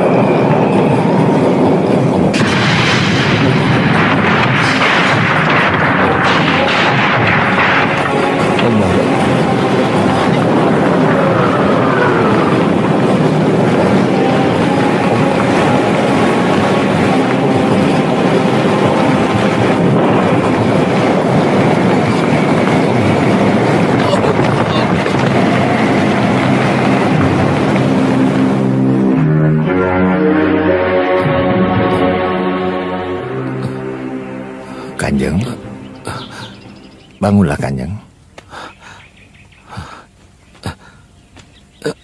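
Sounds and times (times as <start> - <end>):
loud rushing rumble: 0.0 - 37.2.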